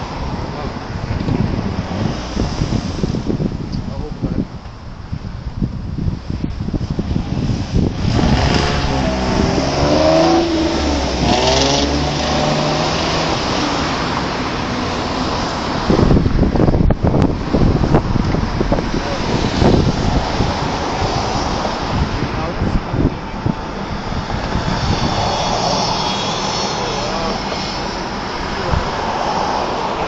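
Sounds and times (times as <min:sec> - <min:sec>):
road traffic passing: 0:00.0 - 0:30.0
wind buffeting microphone: 0:00.0 - 0:30.0
car engine pulling away: 0:07.0 - 0:30.0.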